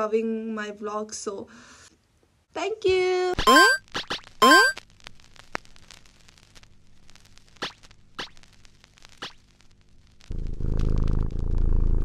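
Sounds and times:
cat purring: 10.3 - 12.0.

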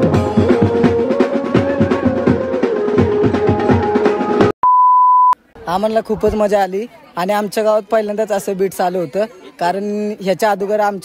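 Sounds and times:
banjo band music with drums: 0.0 - 4.5
electronic beep: 4.6 - 5.4.

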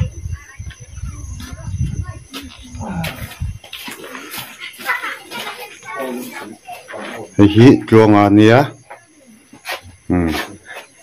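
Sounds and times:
men talking: 5.7 - 8.8.

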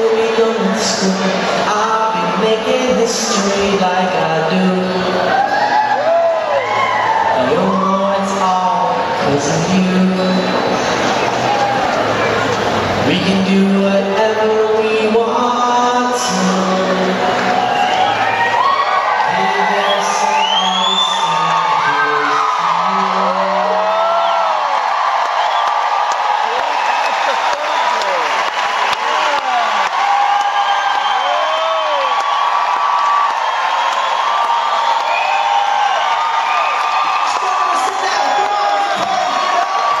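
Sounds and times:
steady applause: 0.0 - 40.0
crowd cheering and whooping: 4.5 - 13.6, 15.6 - 40.0.

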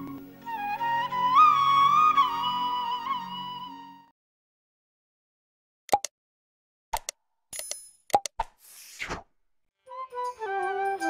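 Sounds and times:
button pops and clicks: 5.9 - 6.1, 6.9 - 8.6.

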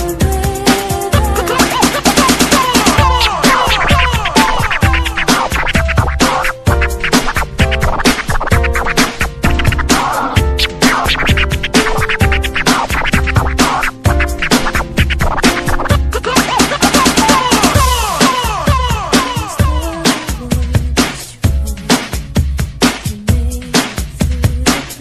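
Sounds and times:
dance remix music: 0.0 - 25.0
driving kick drum beat: 0.0 - 25.0
turntable scratching: 0.6 - 23.1.

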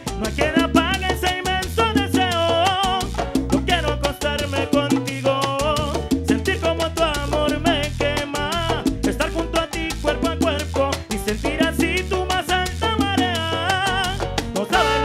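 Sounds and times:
live salsa band playing: 0.0 - 15.0.

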